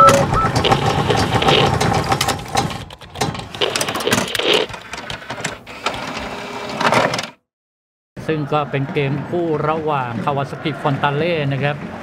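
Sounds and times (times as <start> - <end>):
fast mechanical clicks and ticks: 0.0 - 5.6.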